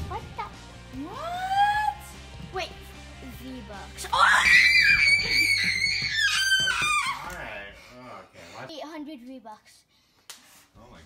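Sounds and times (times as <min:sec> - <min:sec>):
child screaming: 0:04.1 - 0:07.4.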